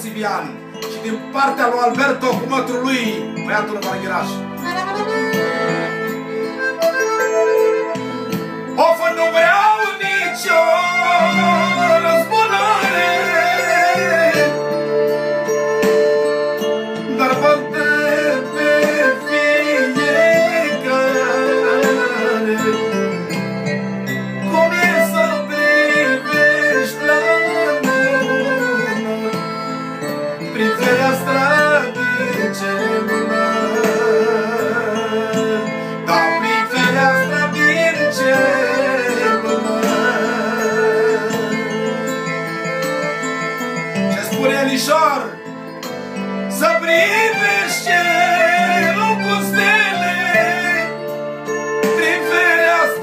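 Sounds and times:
man singing: 0.0s - 6.1s, 8.8s - 14.8s, 17.0s - 23.7s, 24.4s - 43.4s, 44.0s - 45.5s, 46.5s - 51.2s, 51.8s - 53.0s
accordion melody over band: 0.0s - 53.0s.

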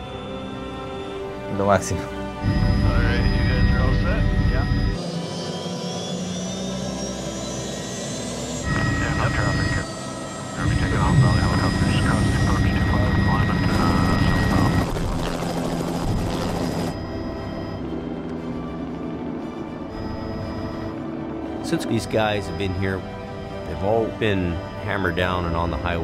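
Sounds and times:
helicopter engine and rotor drone: 0.0s - 26.0s
turbine whine rising: 2.4s - 18.8s.

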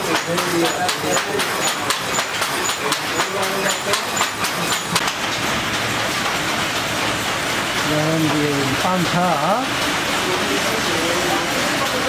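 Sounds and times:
wooden hand looms clacking: 0.0s - 12.0s.

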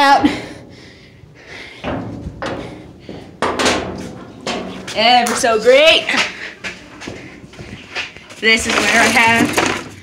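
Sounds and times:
knocks and scuffs in metal shed: 1.7s - 10.0s.

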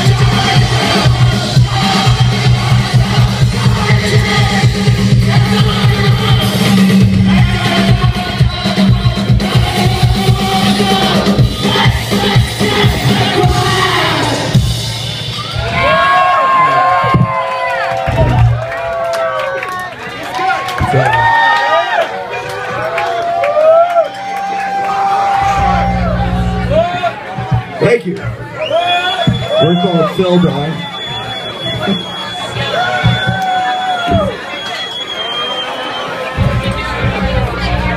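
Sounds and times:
heavy drum and bass hits: 0.0s - 16.3s
live punk band playing: 0.0s - 16.9s
crowd shouting and singing: 0.0s - 37.9s
steady high whine: 24.6s - 27.3s
low rumble: 25.2s - 27.1s.

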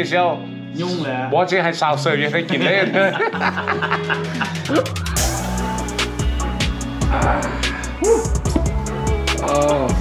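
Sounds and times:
person chuckling: 2.9s - 5.1s
background music with ticking beat: 3.1s - 10.0s.

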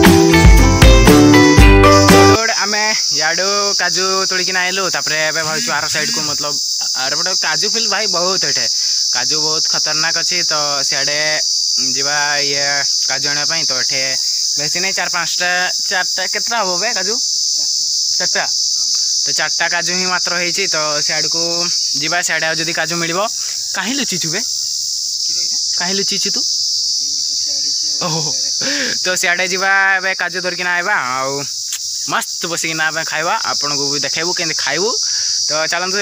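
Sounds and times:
insects droning: 0.0s - 36.0s
man calling out: 2.1s - 8.8s, 11.8s - 17.2s, 27.0s - 31.5s.

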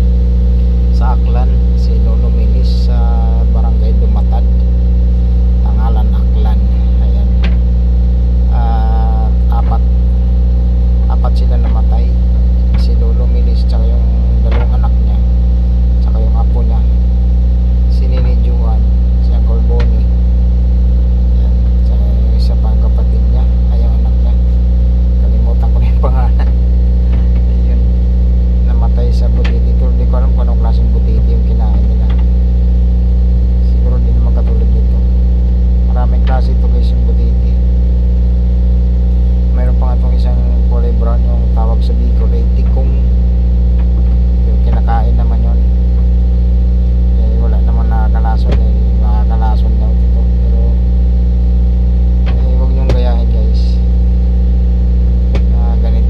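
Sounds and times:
low motor drone: 0.0s - 56.0s
voices speaking: 8.4s - 10.0s, 10.8s - 15.4s, 17.9s - 20.4s, 21.2s - 32.5s, 35.8s - 37.7s, 39.5s - 46.4s, 47.1s - 50.9s, 52.1s - 54.0s.

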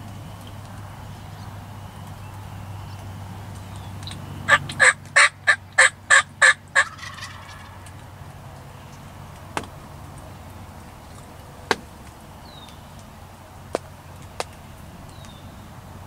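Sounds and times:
turkey yelps: 4.5s - 7.9s.

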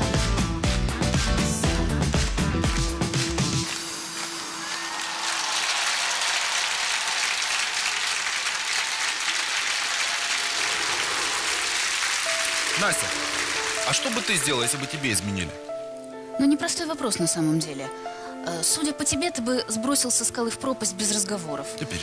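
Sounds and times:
pop song backing music: 0.0s - 4.6s
studio audience applauding: 2.7s - 15.6s.

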